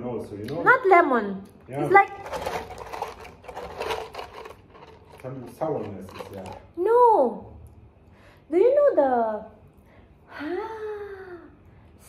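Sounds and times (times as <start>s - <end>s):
pistachios clattering in glass jar: 2.0s - 6.7s.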